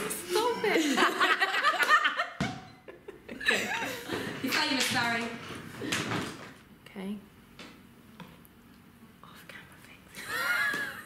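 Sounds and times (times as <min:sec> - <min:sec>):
faint whispering: 0:09.2 - 0:10.2.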